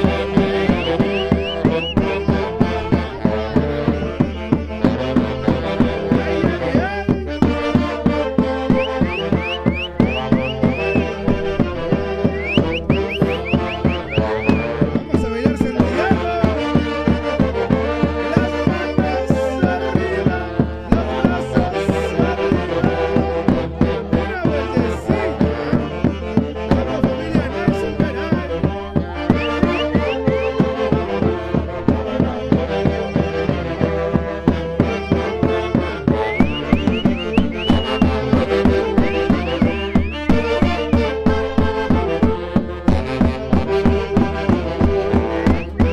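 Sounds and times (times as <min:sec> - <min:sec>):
bass drum beat: 0:00.0 - 0:45.9
saxophones playing dance music: 0:00.0 - 0:45.9.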